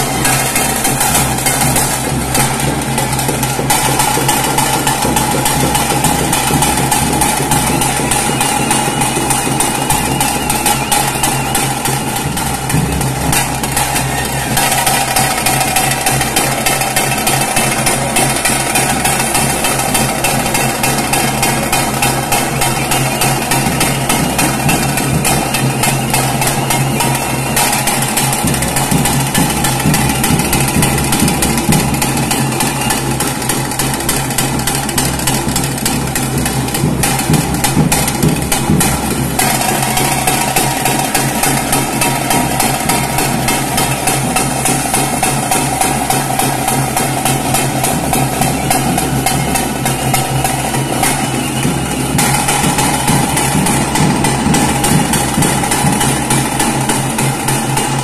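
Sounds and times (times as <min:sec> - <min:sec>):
fast drumming: 0:00.0 - 0:58.0.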